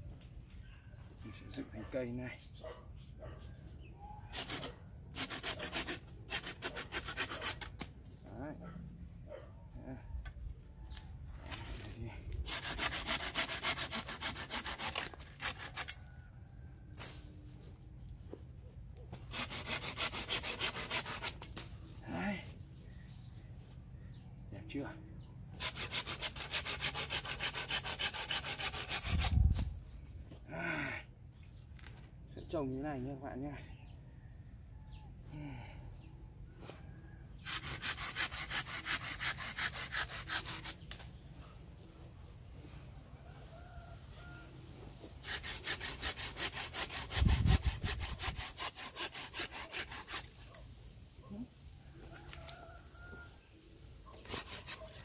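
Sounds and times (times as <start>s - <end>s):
hand saw cutting branch: 4.3s - 7.9s, 12.3s - 16.1s, 19.1s - 21.7s, 25.5s - 29.6s, 37.3s - 41.1s, 45.2s - 50.6s, 54.1s - 55.0s.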